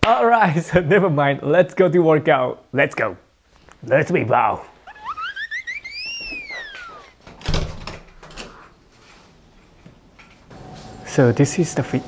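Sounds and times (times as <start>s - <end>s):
whistle-like rising and gliding tone: 4.9s - 7.1s.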